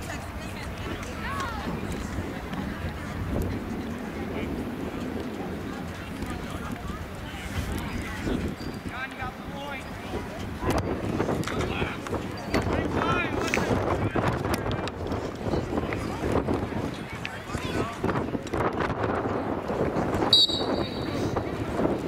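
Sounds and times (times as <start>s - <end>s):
referee's whistle: 20.3s - 21.3s.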